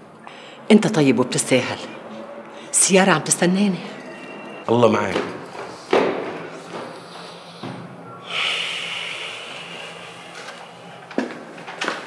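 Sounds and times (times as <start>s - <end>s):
man breathing out through nose: 6.9s - 11.0s.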